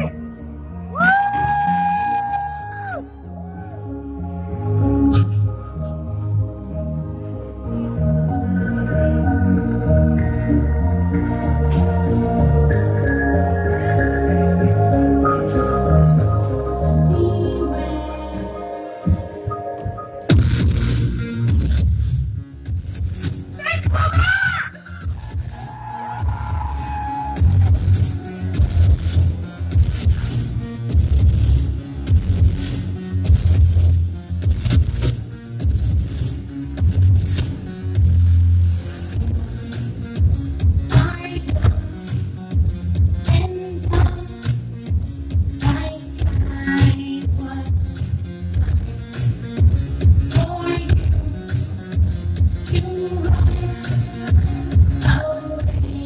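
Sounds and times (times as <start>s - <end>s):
heavy pulsing bass: 0.0s - 19.4s, 20.3s - 56.0s
crowd cheering woo: 0.7s - 3.9s, 24.1s - 28.9s
synth-pop band playing live: 4.5s - 56.0s
person singing: 7.8s - 19.5s.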